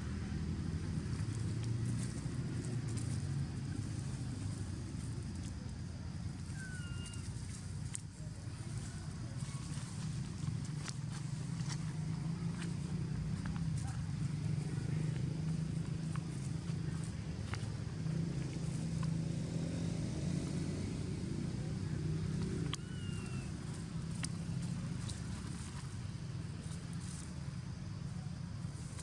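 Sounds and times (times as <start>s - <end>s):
vehicle engine hum: 0.0s - 29.0s.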